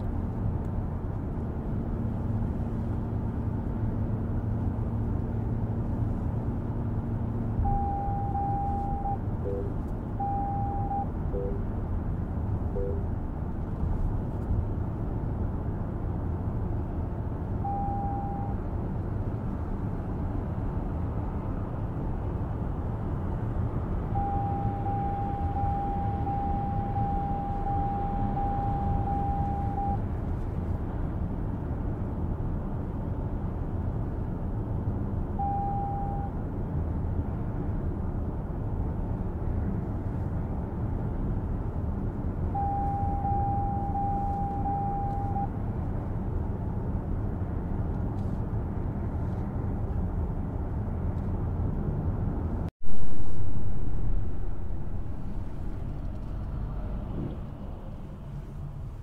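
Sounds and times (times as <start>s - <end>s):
low engine hum: 0.0s - 59.0s
short electronic beeps: 7.6s - 11.6s, 12.8s - 13.0s, 17.7s - 18.6s, 24.2s - 30.0s, 35.4s - 36.3s, 42.6s - 45.5s
steady high tone: 7.7s - 11.6s, 12.8s - 13.0s
tyre and road rumble: 47.2s - 59.0s.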